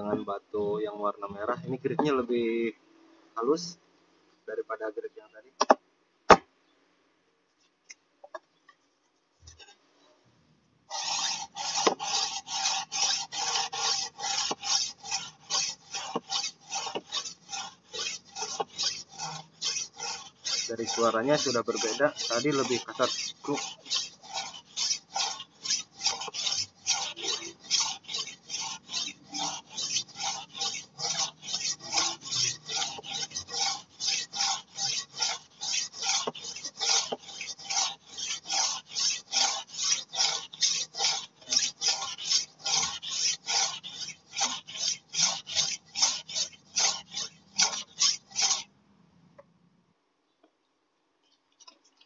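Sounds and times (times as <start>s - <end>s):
blade scraping on whetstone: 9.4s - 9.8s, 10.9s - 48.7s.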